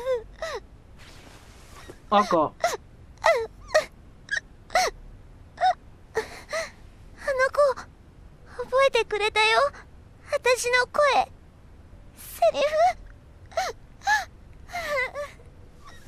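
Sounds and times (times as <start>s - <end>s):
young woman sobbing: 0.0s - 0.7s, 2.1s - 5.0s, 5.6s - 7.4s, 12.5s - 15.4s.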